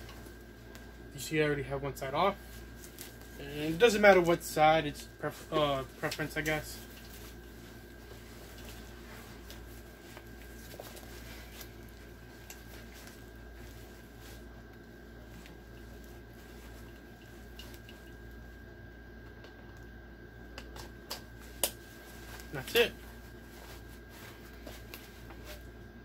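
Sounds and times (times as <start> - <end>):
rustling of nylon vest: 2.2 - 18.7, 20.9 - 25.8.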